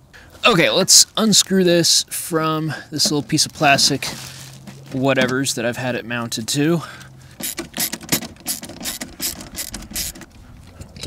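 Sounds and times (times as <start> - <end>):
sharp clicks and rattles of screws: 7.4 - 11.0.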